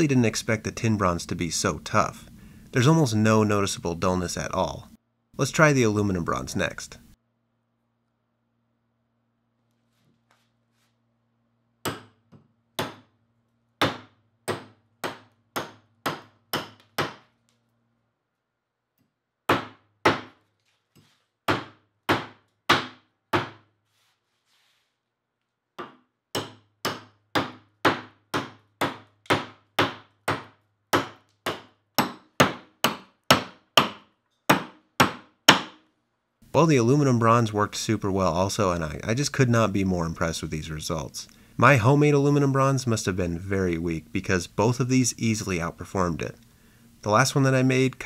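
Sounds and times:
hatchet chopping wood: 11.8 - 13.1, 13.8 - 17.3, 19.5 - 20.4, 21.4 - 23.7, 25.8 - 35.8.

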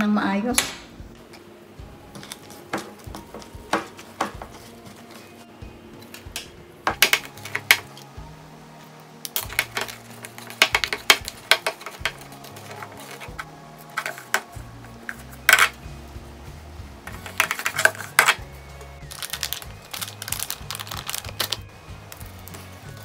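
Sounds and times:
faint background music: 0.0 - 23.0.

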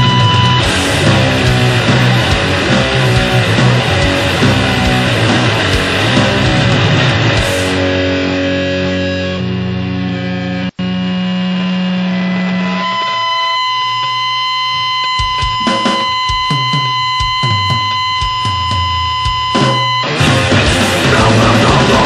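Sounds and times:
drum hits: 0.0 - 7.8, 15.2 - 22.0
punk band playing: 0.0 - 9.5, 15.0 - 22.0
distorted guitar chord: 0.0 - 22.0
high buzzing tone: 0.0 - 22.0.

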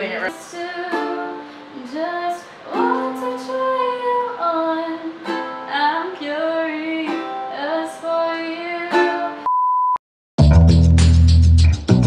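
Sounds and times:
woman singing: 0.0 - 9.4
ukulele strumming: 0.0 - 9.5
background music with heavy bass: 10.4 - 12.0.

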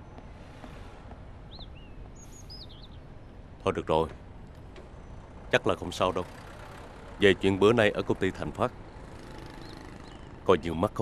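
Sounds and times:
small birds chirping: 1.4 - 11.0.

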